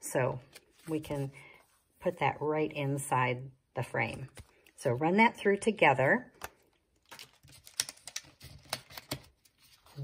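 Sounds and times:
paper rustling: 7.0 - 10.0.

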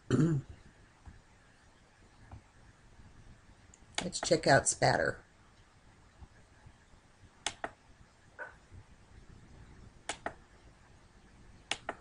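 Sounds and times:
computer mouse clicking: 7.4 - 7.8, 10.0 - 10.4, 11.7 - 12.0.

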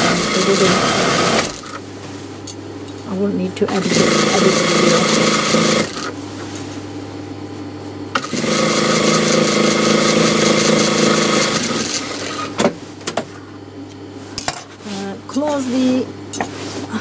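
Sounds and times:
sewing machine stitching: 0.0 - 1.8, 3.7 - 6.1, 8.2 - 12.6.

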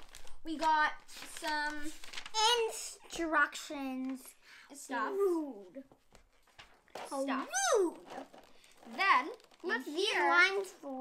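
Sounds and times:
packaging crinkling: 0.0 - 2.4, 7.9 - 11.0
girl's wordless exclamation: 1.2 - 5.9, 7.1 - 11.0.

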